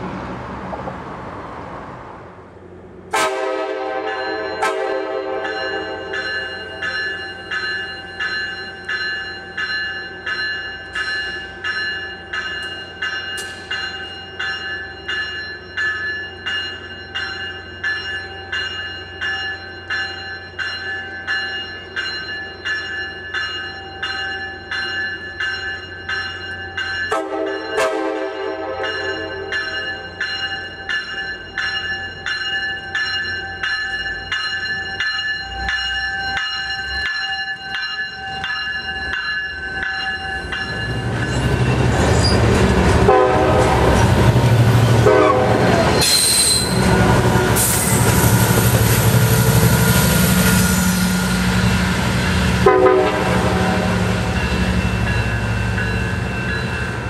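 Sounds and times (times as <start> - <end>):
low train hum: 0.0 - 57.0
train warning bell ringing: 3.7 - 57.0
distant train rumble: 24.7 - 57.0.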